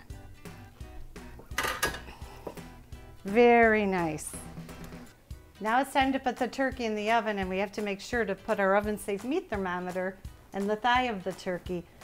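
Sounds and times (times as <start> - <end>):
soft background music: 0.0 - 12.0
wire rack clattering against pan: 1.5 - 2.1.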